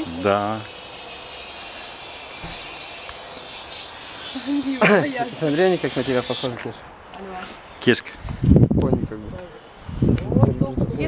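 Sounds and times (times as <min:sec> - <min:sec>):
outdoor background rumble: 0:00.0 - 0:07.8.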